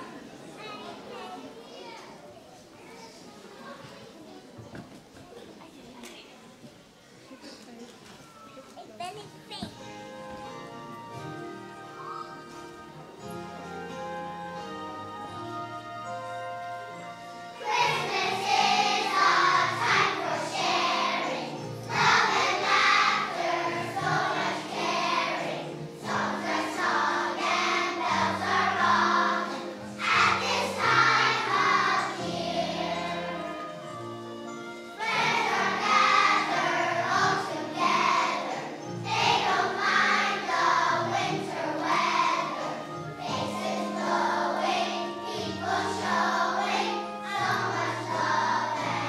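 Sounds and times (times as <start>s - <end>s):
children's choir singing: 0.0s - 1.6s, 9.6s - 49.0s
instrumental accompaniment: 8.0s - 49.0s.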